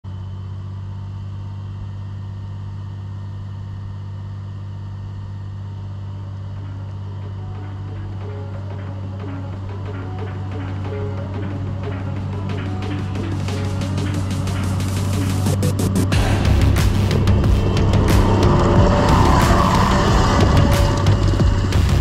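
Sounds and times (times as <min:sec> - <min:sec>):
snowcat engine droning: 0:00.1 - 0:22.0
background music: 0:06.3 - 0:22.0.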